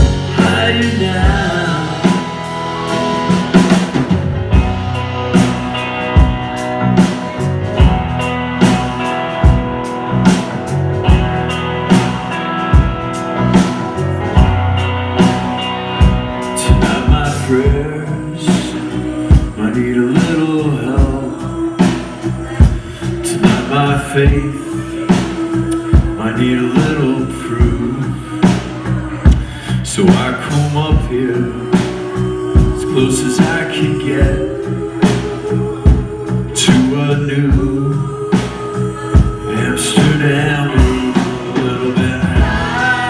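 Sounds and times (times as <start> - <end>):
bass guitar: 0.0 - 43.0
drum kit beat: 0.0 - 43.0
electric guitar: 0.0 - 43.0
keyboards: 0.0 - 43.0.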